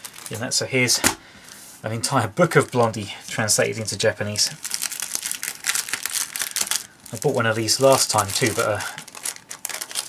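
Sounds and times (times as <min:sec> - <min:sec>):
plastic bag crinkling: 0:00.0 - 0:01.0, 0:02.5 - 0:10.0.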